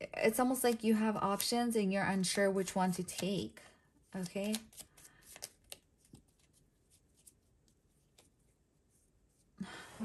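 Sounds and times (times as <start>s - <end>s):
cards being shuffled: 0.5s - 8.5s.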